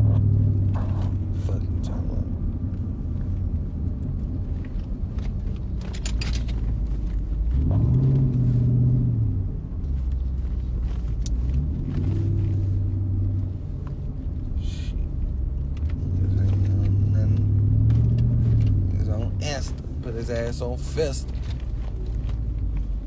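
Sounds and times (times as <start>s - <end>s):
car engine drone from cabin: 0.0s - 23.0s.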